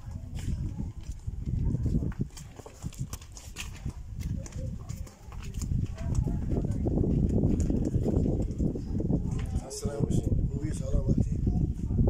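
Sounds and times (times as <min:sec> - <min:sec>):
footsteps on pavement: 0:00.0 - 0:09.7.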